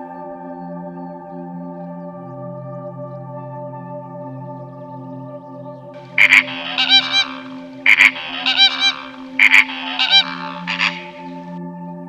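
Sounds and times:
soft ambient music: 0.0 - 12.0
flamingo honking: 6.0 - 11.6.

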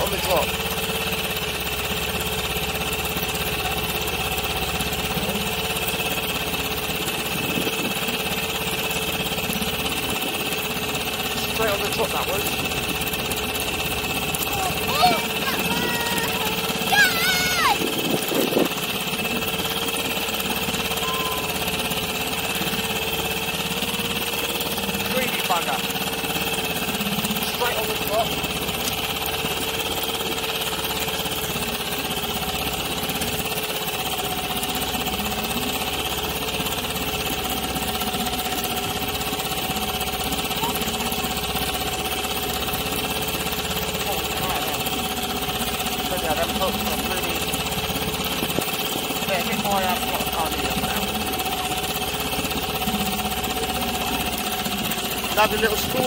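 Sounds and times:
small outboard motor idling: 0.0 - 56.0.

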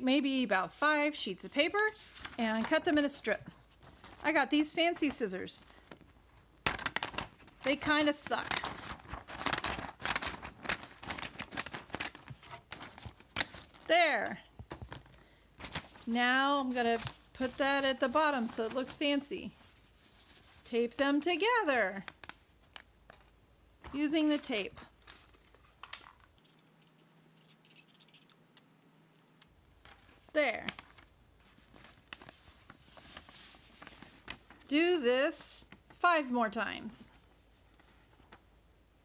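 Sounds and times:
paper crinkling: 1.4 - 20.9, 21.8 - 27.0, 29.8 - 34.8, 37.2 - 38.4.

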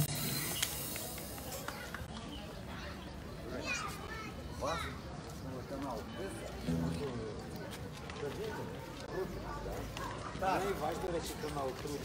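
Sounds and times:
quiet street background: 0.0 - 12.0.

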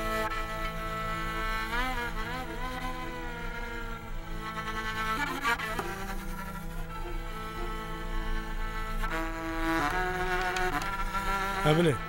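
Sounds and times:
bowed spike fiddle: 0.0 - 12.0.

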